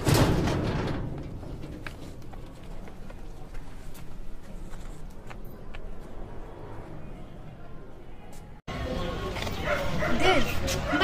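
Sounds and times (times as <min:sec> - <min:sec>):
outdoor street noise: 0:00.0 - 0:11.0
dog barking: 0:09.6 - 0:11.0.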